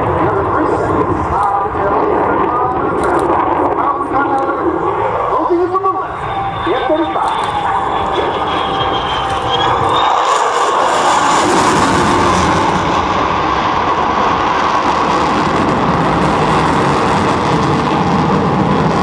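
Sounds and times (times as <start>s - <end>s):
jet engine roar: 0.0s - 19.0s.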